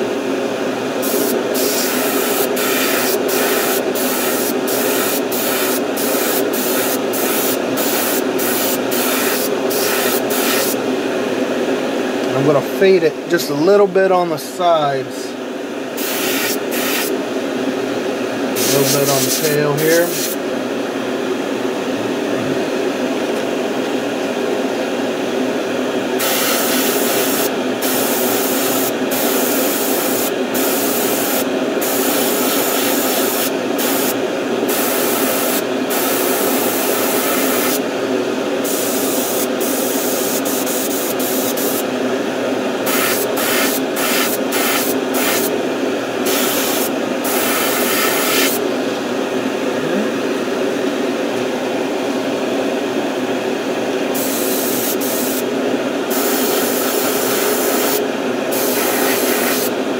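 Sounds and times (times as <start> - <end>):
steady low hum: 0.0 - 36.2, 36.8 - 59.9
airbrush spraying hissing bursts: 1.0 - 10.8, 16.0 - 17.2, 18.6 - 20.4, 26.2 - 37.8, 38.6 - 41.8, 42.9 - 45.5, 46.2 - 48.6, 54.2 - 55.5, 56.1 - 59.7.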